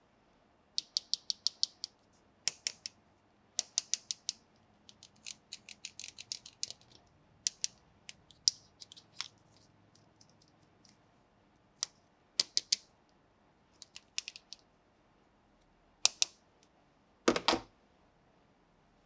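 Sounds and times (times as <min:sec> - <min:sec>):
plastic toy parts clicking: 0:00.8 - 0:01.9, 0:02.5 - 0:03.0, 0:03.6 - 0:09.4, 0:11.8 - 0:12.8, 0:13.8 - 0:14.6.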